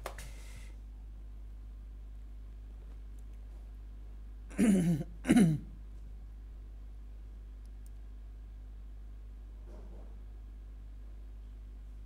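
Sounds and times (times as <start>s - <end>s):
steady low hum: 0.0s - 12.0s
man clearing his throat: 4.5s - 5.8s.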